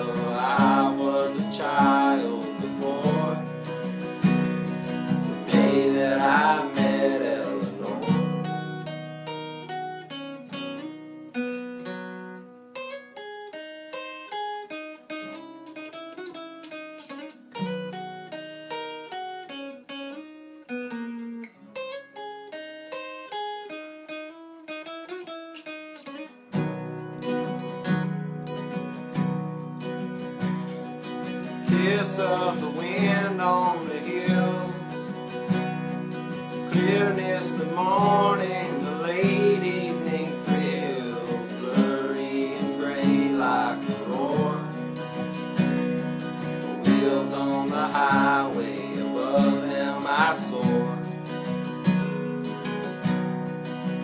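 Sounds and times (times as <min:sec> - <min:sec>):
acoustic guitar: 0:00.0 - 0:54.0.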